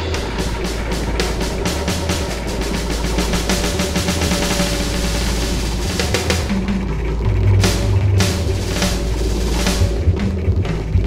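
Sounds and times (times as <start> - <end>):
low drone: 0.0 - 11.0
noisy electronic music: 0.0 - 11.0.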